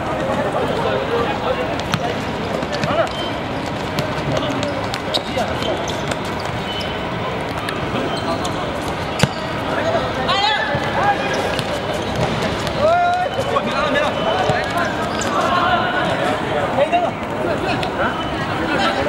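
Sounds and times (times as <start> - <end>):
ball kicked and bouncing: 1.8 - 6.5, 9.2 - 9.5.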